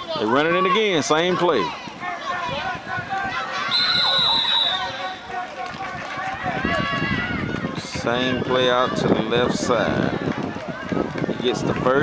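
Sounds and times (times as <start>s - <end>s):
spectators shouting: 0.1s - 11.8s
referee's whistle: 3.6s - 5.2s.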